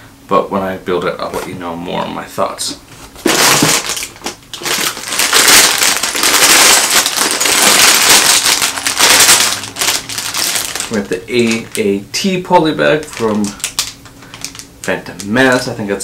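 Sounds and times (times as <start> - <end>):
plastic bags crinkling: 3.2 - 15.8.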